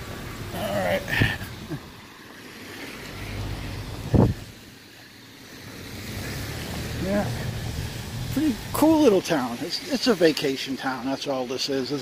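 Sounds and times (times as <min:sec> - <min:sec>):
car tyres swishing on wet street: 0:00.0 - 0:12.0.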